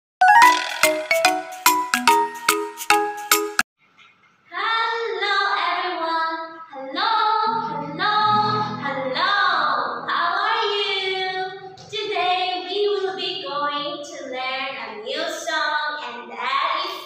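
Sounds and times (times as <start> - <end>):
backing music: 0.2 - 3.6, 7.5 - 10.3
high bright singing: 6.9 - 11.7.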